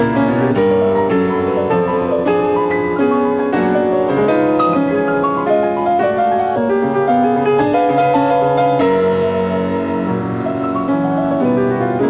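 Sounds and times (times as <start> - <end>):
slow solo piano: 0.0 - 12.0.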